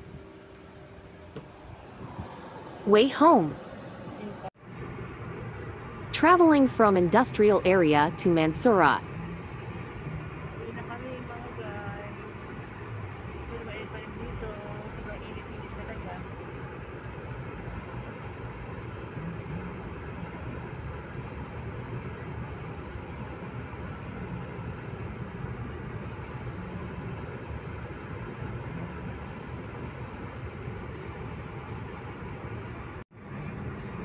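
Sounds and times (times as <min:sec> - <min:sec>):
car road and engine noise: 0:00.0 - 0:34.0.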